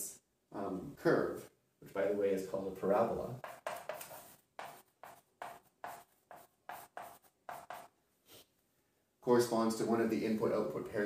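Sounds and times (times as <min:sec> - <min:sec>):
chalk scratching on blackboard: 0:03.4 - 0:08.5.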